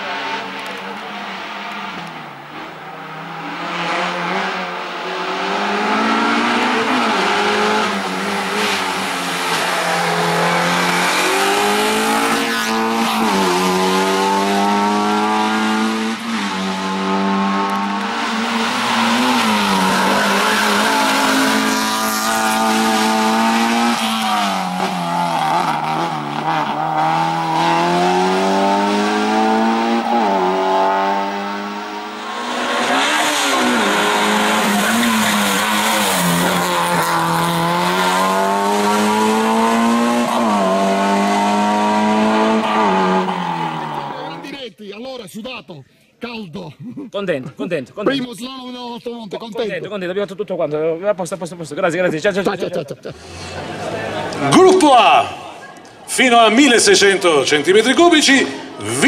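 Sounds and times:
car engine revving hard: 1.2s - 44.5s, 53.1s - 55.5s.

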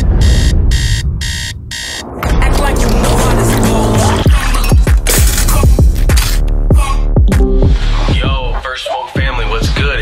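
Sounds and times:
low rumble: 0.0s - 5.1s
phone alarm beeping: 0.2s - 2.1s.

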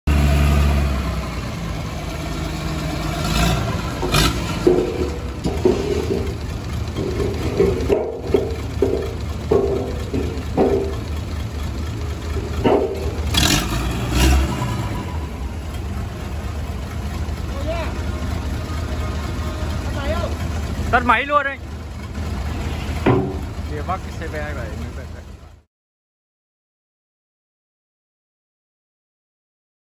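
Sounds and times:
diesel engine rumbling: 0.0s - 25.7s
sharp metallic knocks: 3.7s - 14.7s, 22.1s - 24.0s.

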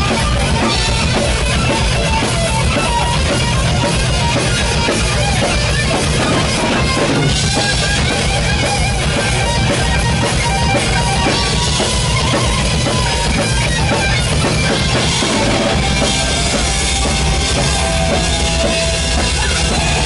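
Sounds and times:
distorted electric guitar: 0.0s - 20.0s
drum kit with bass drum: 0.0s - 20.0s.

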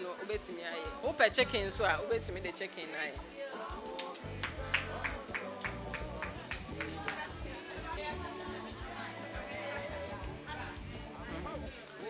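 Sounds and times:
background music with beat: 0.0s - 12.0s
faint voice: 5.0s - 12.0s.

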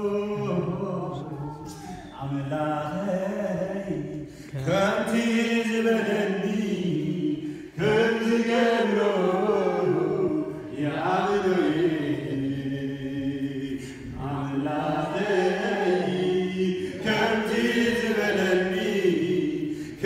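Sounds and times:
voices chanting a sung refrain: 0.0s - 20.0s.

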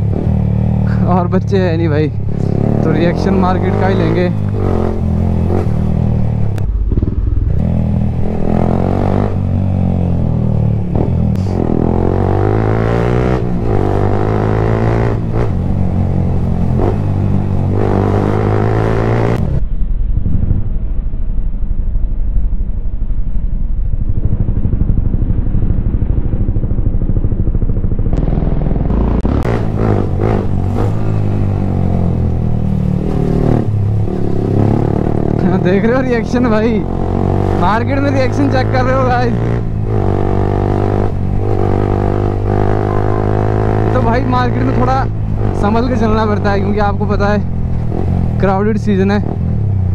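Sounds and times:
motorcycle engine revving: 0.0s - 19.6s, 23.8s - 49.9s
wind and road noise: 0.0s - 49.9s.

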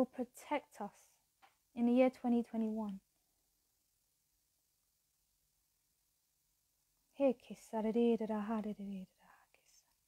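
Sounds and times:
woman speaking a prayer: 0.0s - 1.1s, 1.8s - 3.0s, 7.2s - 9.8s
faint breathy sound: 9.0s - 10.0s.

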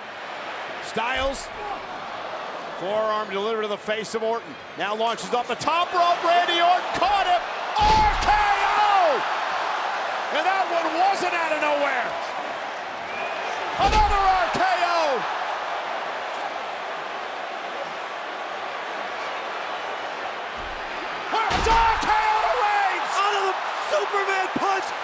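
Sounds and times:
arena crowd noise: 0.0s - 25.0s.

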